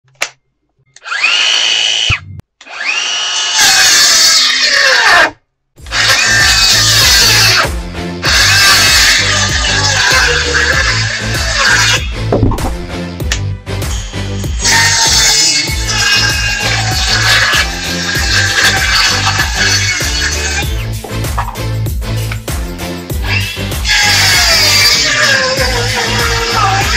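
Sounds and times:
circular saw revving and cutting: 0:01.0 - 0:12.3, 0:13.9 - 0:21.0, 0:23.2 - 0:26.9
background music with steady beat: 0:05.8 - 0:26.9.

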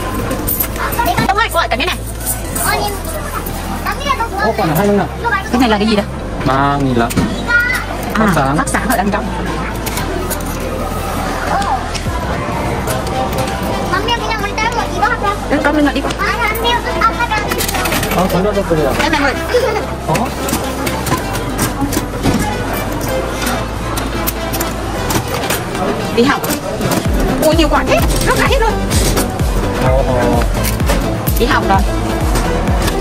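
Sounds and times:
children talking: 0:00.0 - 0:33.0
people talking: 0:25.7 - 0:29.2.

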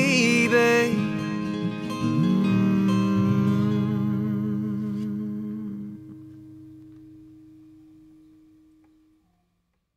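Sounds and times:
acoustic guitar chord ringing: 0:00.0 - 0:09.6.

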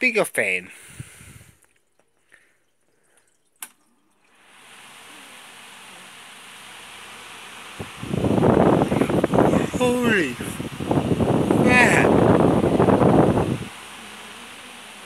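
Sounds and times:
fan airflow hiss: 0:00.0 - 0:01.6, 0:04.3 - 0:15.0
wind rumble on microphone: 0:00.9 - 0:01.6, 0:07.8 - 0:13.8.

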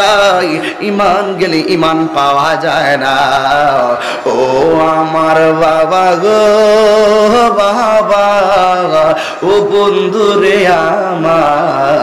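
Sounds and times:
man chanting through microphones: 0:00.0 - 0:12.0.

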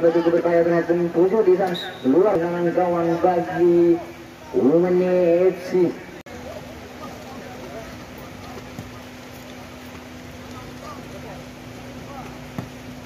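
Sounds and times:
distant indistinct voices: 0:00.0 - 0:13.0.

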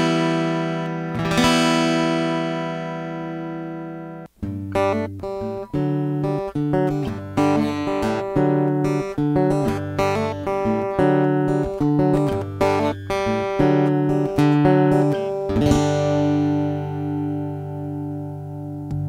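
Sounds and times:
acoustic guitar chord ringing: 0:00.0 - 0:19.0
picked acoustic guitar passage: 0:00.0 - 0:19.0.

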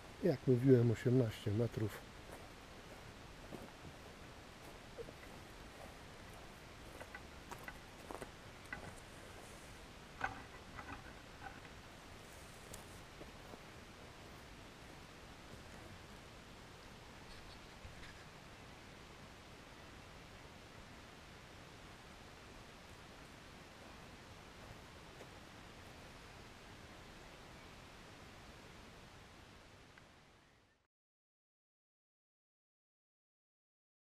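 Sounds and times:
faint outdoor hiss: 0:00.0 - 0:30.9
soft clicks and rustles: 0:05.0 - 0:13.6.

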